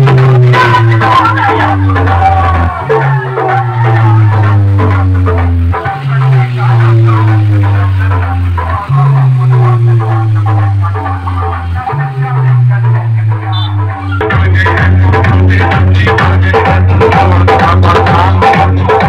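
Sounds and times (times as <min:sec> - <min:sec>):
booming bass notes: 0:00.0 - 0:19.0
dance music drum beat: 0:00.0 - 0:19.0.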